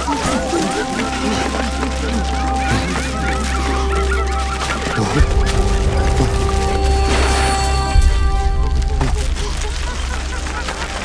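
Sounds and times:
low drone of background music: 0.0s - 11.0s
poultry calling: 0.0s - 11.0s.

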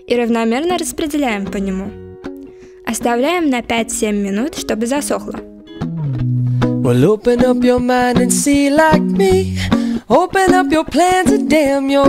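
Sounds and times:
plucked strings: 0.7s - 12.0s
person singing sliding melody: 6.8s - 12.0s.

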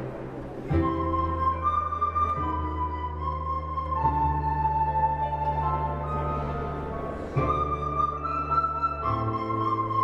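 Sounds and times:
soprano recorders playing in unison: 0.6s - 10.0s.

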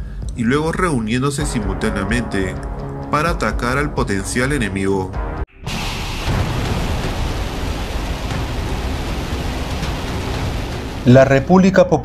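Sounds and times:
rocket engine roaring: 5.5s - 11.7s.

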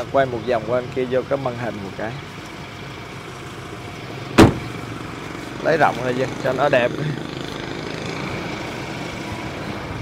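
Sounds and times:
vehicle door shutting: 4.3s - 4.8s.

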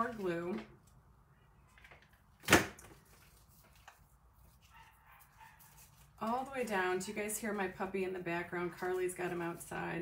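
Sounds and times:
puppy barking: 4.7s - 5.8s.

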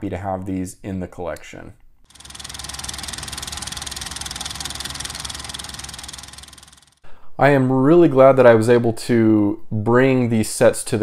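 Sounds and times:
film projector clattering: 2.1s - 7.0s.

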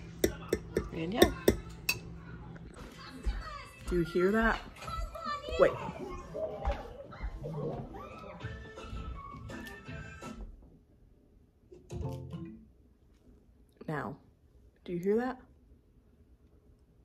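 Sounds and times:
television music: 0.0s - 10.9s, 11.7s - 12.8s.

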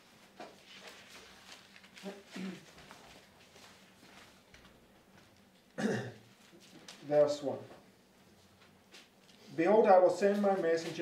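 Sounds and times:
person clearing throat: 2.3s - 2.8s, 5.8s - 6.3s.

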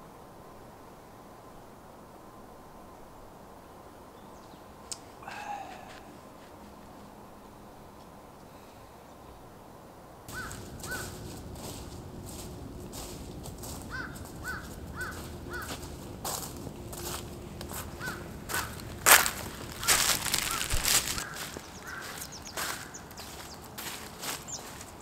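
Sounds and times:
bird calling short notes: 10.3s - 11.3s, 19.7s - 23.5s
footsteps crunching dry leaves: 10.3s - 25.0s.

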